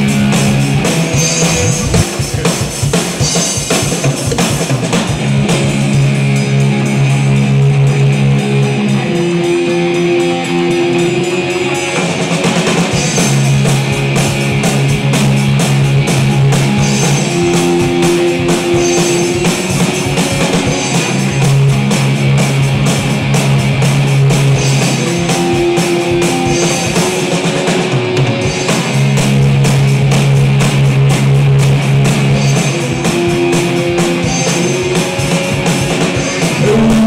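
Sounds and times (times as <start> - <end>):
drum kit beating fast rhythm: 0.0 - 37.0
rockabilly band playing: 0.0 - 37.0.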